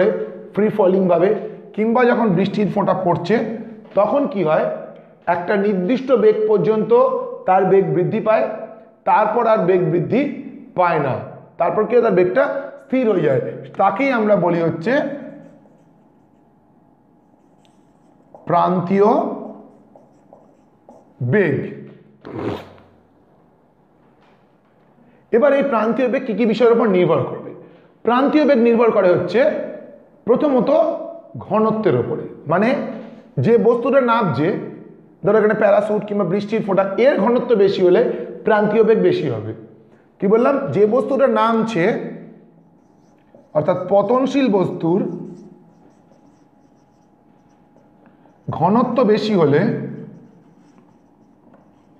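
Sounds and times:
marker writing on whiteboard: 13.7 - 21.4, 42.6 - 51.9
man speaking: 18.4 - 19.9, 21.1 - 21.8, 43.4 - 45.6, 48.5 - 50.2.

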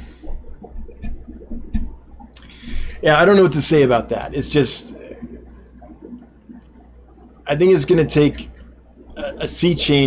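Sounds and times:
aquarium water gurgling: 0.0 - 10.0
steady low hum: 0.0 - 10.0.

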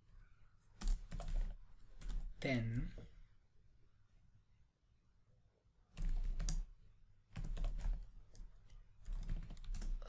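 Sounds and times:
typing on computer keyboard: 0.8 - 2.4, 5.9 - 6.7, 7.3 - 10.0.

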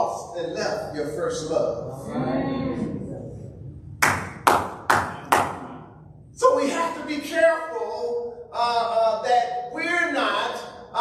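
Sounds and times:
man clapping hands: 4.0 - 5.7.

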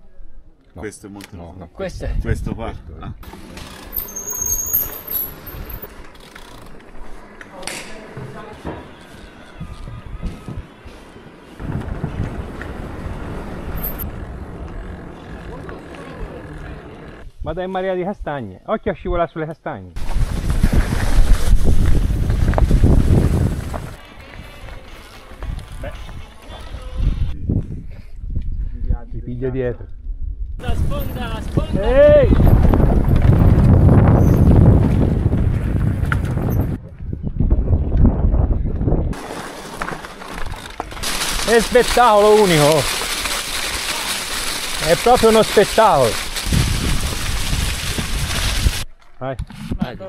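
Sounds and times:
bike tyres rolling on dirt trail: 3.2 - 17.2, 20.0 - 27.4, 30.6 - 49.1
wind buffeting microphone: 9.2 - 15.5, 20.0 - 24.6, 26.7 - 39.2, 46.0 - 49.9.

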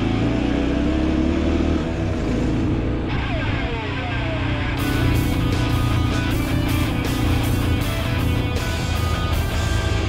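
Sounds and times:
motorcycle engine running: 1.9 - 10.0.

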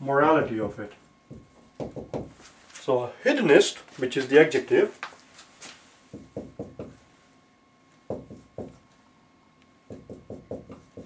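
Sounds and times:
marker tapping on whiteboard: 1.3 - 2.4, 6.1 - 7.0, 8.1 - 8.8, 9.9 - 11.0.

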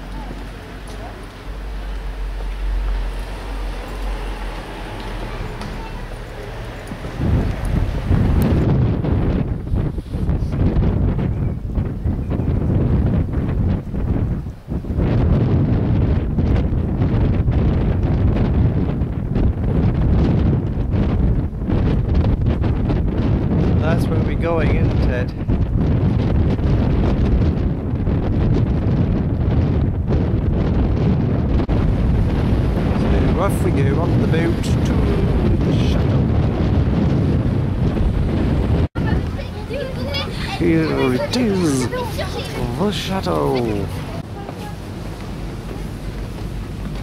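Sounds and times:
wind buffeting microphone: 0.0 - 47.0.

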